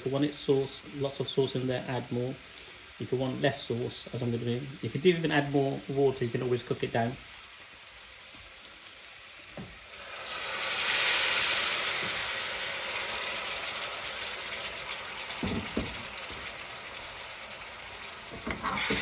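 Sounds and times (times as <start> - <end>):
water sizzling in hot pan: 0.0 - 19.0
faint knocks: 15.4 - 16.1.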